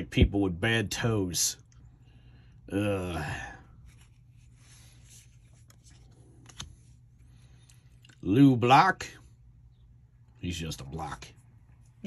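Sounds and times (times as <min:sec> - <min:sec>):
trading cards rustling: 0:03.7 - 0:08.2
light clicks of card pulled: 0:05.6 - 0:06.9.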